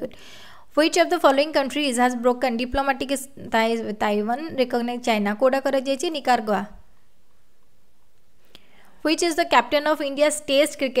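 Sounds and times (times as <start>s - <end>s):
low steady hiss: 0.0s - 11.0s
faint breath: 0.1s - 0.7s, 8.4s - 9.1s.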